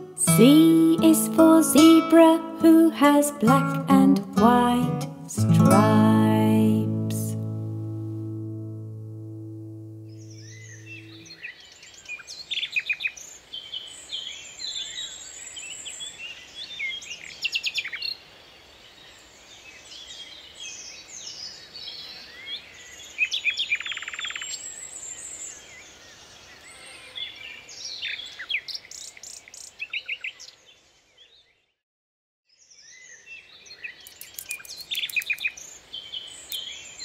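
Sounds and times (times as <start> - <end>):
birds chirping and whistling: 10.1 - 11.4, 34.0 - 35.7.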